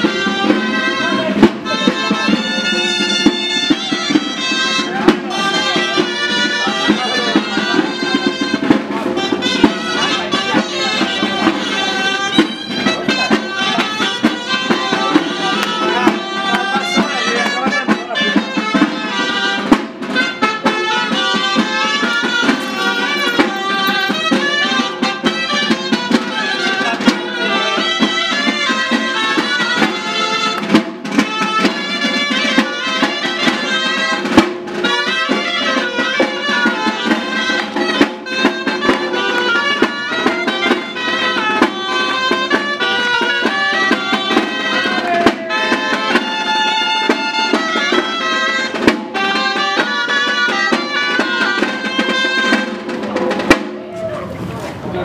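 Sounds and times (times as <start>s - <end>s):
shrill reed pipe melody: 0.0s - 53.5s
drum beat: 0.0s - 54.8s.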